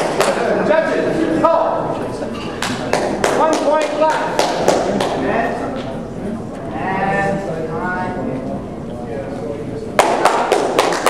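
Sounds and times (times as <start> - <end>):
voices talking in background: 0.1 - 10.0.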